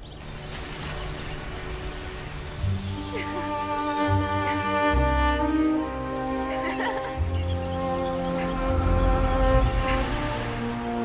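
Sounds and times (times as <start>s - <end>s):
low musical drone: 0.0s - 11.0s
rushing rain-like noise: 0.0s - 11.0s.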